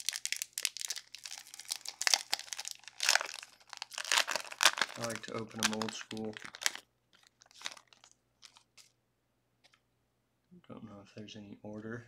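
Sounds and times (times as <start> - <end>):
foil wrapper ripping: 0.0 - 8.9
foil wrapper crinkling: 0.0 - 9.0.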